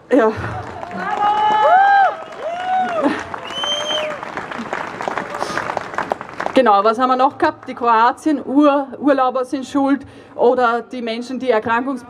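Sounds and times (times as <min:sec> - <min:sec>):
crowd clapping: 0:00.4 - 0:07.8.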